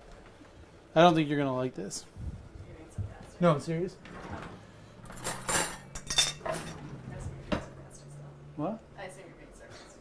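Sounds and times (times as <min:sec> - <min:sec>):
cutlery clinking against plates: 0:05.0 - 0:06.9.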